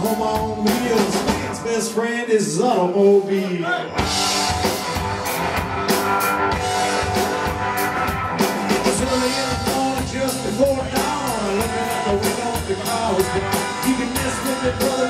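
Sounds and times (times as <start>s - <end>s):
drum kit steady beat: 0.0s - 1.7s, 3.9s - 15.0s
electric guitar: 0.0s - 15.0s
upright bass: 0.0s - 15.0s.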